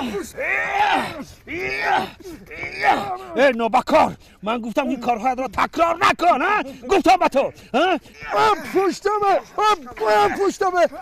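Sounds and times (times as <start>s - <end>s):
man moaning in pain: 0.0s - 3.4s.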